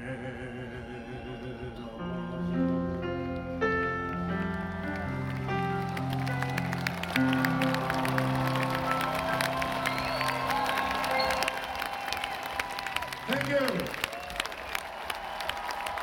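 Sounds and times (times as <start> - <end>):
band piano ballad chords: 2.0 - 13.4
audience applauding: 3.8 - 16.0
whistles and cheers: 5.8 - 16.0.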